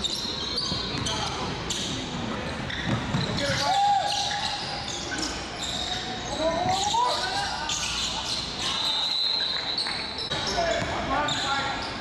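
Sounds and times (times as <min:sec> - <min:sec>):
sneakers squeaking on court: 0:00.0 - 0:12.0
voices echoing: 0:00.0 - 0:12.0.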